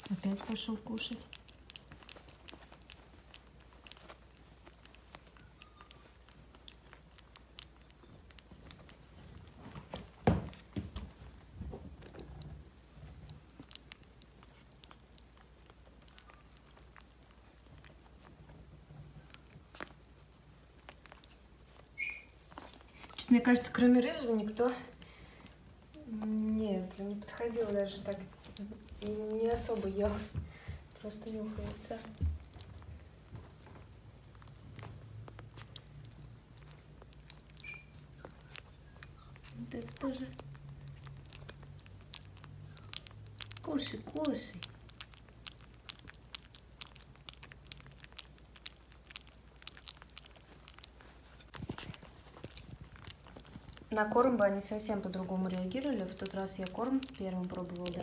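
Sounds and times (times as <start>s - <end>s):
low steady hum: 0.0s - 58.0s
puppies lapping and chewing: 0.0s - 58.0s
puppy squeak: 21.9s - 22.4s, 37.6s - 39.3s.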